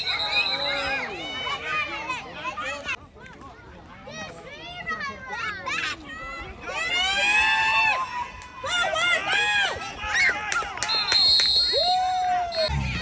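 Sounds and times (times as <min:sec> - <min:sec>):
spectators shouting and cheering: 0:00.0 - 0:03.0, 0:05.8 - 0:13.0
short whistle blast: 0:10.8 - 0:12.0.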